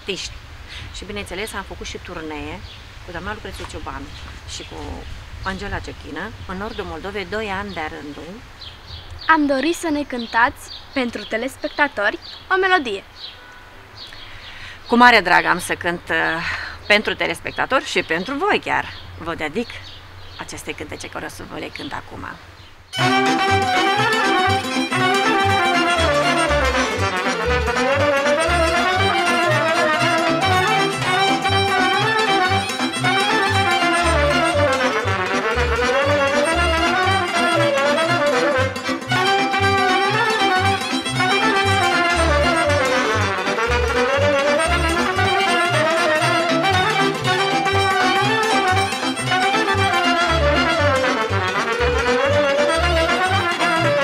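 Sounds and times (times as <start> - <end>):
folk band melody: 23.0 - 54.0
pulsing bass beat: 23.0 - 54.0.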